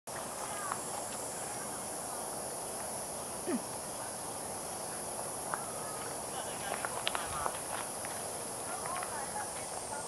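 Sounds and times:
faint chirps and ticks: 0.1s - 10.0s
insects droning: 0.1s - 10.0s.

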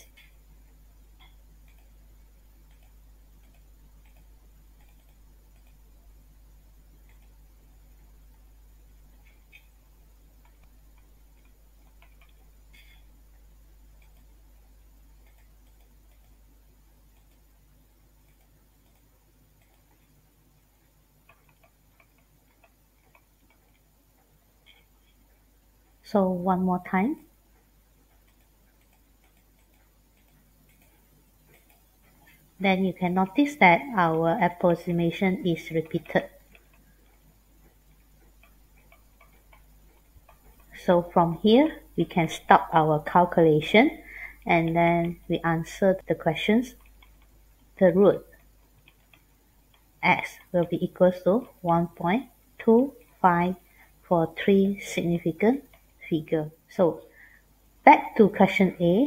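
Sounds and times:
low steady hum: 0.0s - 59.0s
stylus tapping on tablet: 10.4s - 13.0s, 35.8s - 40.7s.

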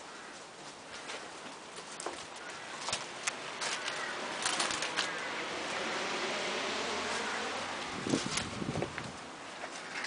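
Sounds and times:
footsteps crunching over twigs: 0.0s - 5.8s, 7.0s - 10.0s.

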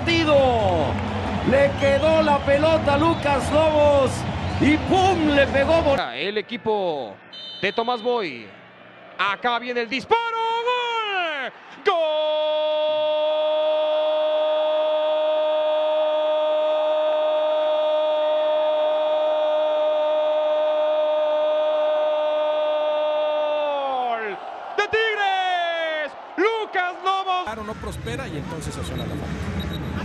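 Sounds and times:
commentator shouting goal call: 7.4s - 8.4s.

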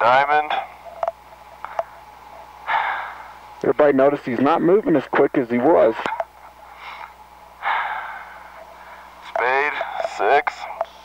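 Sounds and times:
intercom hum and hiss: 0.0s - 11.0s.

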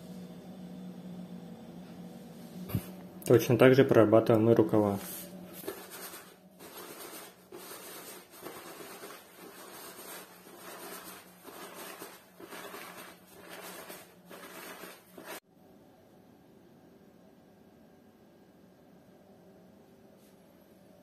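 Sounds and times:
brush scratching jacket sleeve: 5.0s - 15.4s.

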